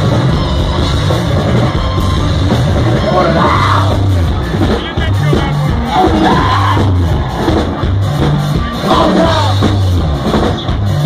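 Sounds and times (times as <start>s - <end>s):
bass guitar: 0.0s - 11.0s
drums: 0.0s - 11.0s
electric guitar: 0.0s - 11.0s
person singing: 8.6s - 9.8s.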